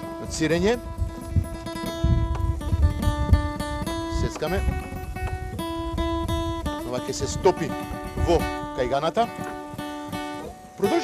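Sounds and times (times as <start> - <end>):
acoustic guitar slow chords: 0.0 - 11.0.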